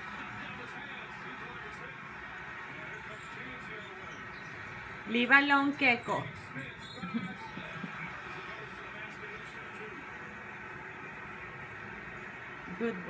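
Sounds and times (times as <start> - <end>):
faint television speech: 0.0 - 13.0
television music: 0.0 - 13.0.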